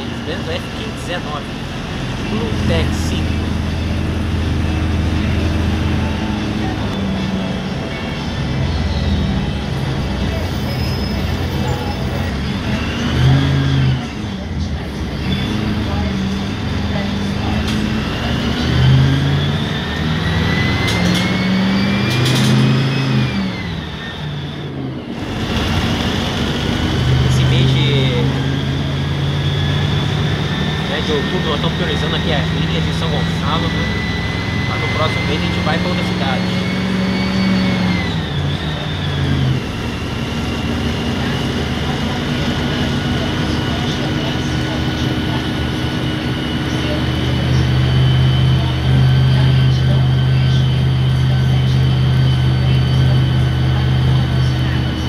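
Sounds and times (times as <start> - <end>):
bus diesel engine: 0.0 - 55.0
high whine: 0.0 - 55.0.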